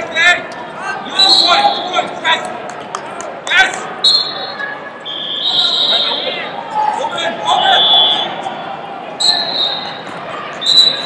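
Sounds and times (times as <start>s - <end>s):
people shouting in echoing hall: 3.5s - 11.0s.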